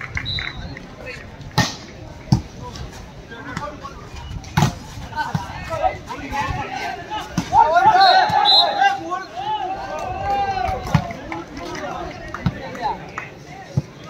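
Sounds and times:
players shouting: 0:05.1 - 0:14.0.

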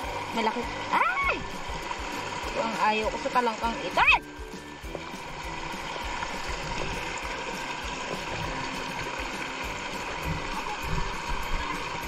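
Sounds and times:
stream water rushing through net: 0:00.0 - 0:12.0.

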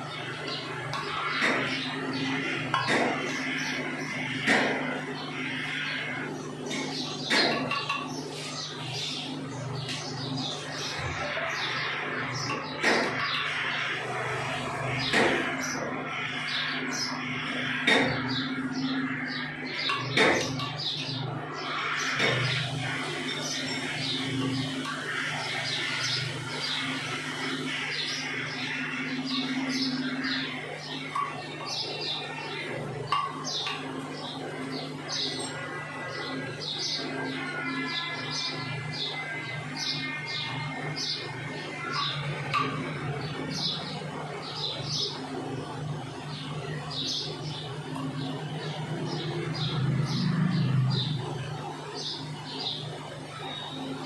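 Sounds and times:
birds chirping: 0:00.0 - 0:54.0
steady low hum: 0:00.0 - 0:54.0.

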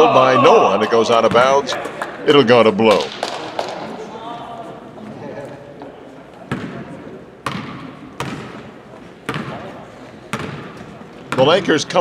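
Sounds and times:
basketball bouncing on wooden floor: 0:07.4 - 0:08.6, 0:09.3 - 0:09.6, 0:10.3 - 0:11.5.

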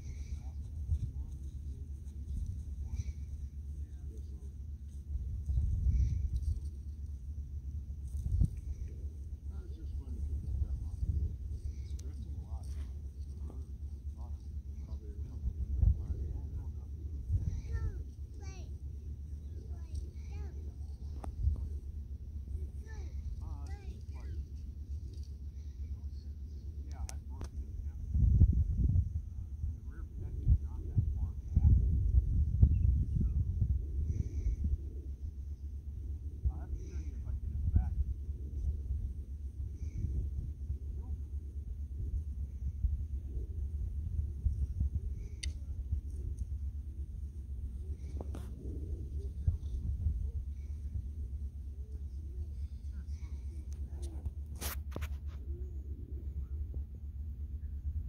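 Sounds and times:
faint distant voices: 0:00.0 - 0:58.0
steady high-pitched whine: 0:00.0 - 0:58.0
wind buffeting microphone: 0:05.0 - 0:06.8, 0:07.8 - 0:22.1, 0:27.3 - 0:54.6.

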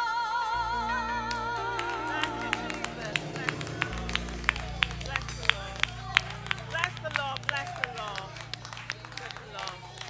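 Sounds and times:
steady low hum: 0:00.6 - 0:10.0.

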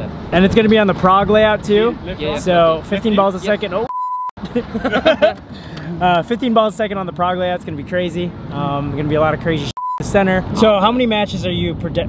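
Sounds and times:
censor bleep: 0:03.9 - 0:04.3, 0:09.8 - 0:10.0
man laughing: 0:04.4 - 0:06.2.

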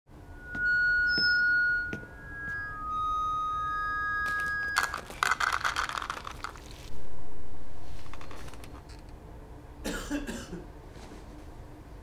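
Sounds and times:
high steady ringing tone: 0:00.1 - 0:05.6
pretzels poured into a bowl: 0:04.3 - 0:06.9.

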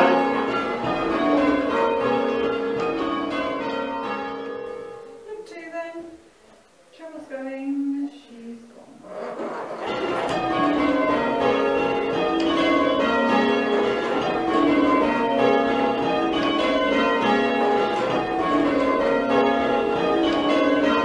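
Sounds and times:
church bells ringing: 0:00.0 - 0:05.7, 0:09.8 - 0:21.0.

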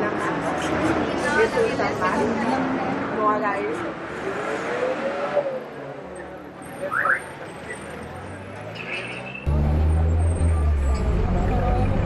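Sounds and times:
steady traffic noise: 0:00.0 - 0:12.0
vehicle engine revving: 0:08.5 - 0:12.0.

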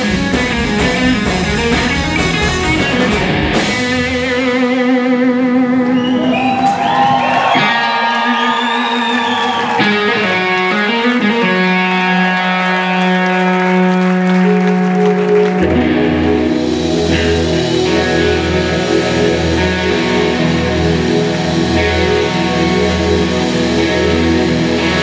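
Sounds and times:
bass and drums: 0:00.0 - 0:25.0
distorted electric guitar: 0:00.0 - 0:25.0.

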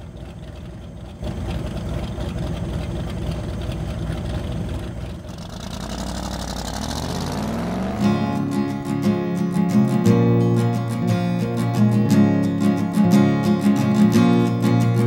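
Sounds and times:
truck engine revving: 0:00.0 - 0:15.0
acoustic guitar music: 0:06.3 - 0:15.0.

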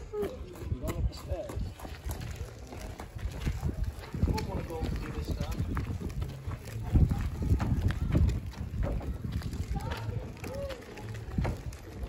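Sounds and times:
footsteps on wooden stairs: 0:00.1 - 0:12.0.

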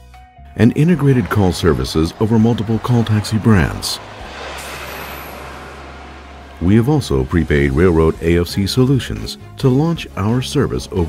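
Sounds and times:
low traffic hum: 0:00.6 - 0:08.8
road traffic rushing: 0:00.7 - 0:08.4.

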